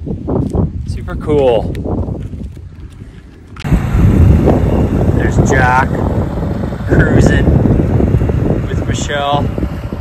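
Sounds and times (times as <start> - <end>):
wind buffeting microphone: 0.0 - 10.0
boat on water: 1.2 - 10.0.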